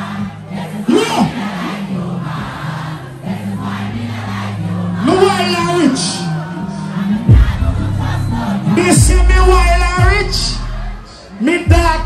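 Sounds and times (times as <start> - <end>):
crowd shouting and cheering: 0.0 - 12.0
dancehall music: 4.7 - 12.0.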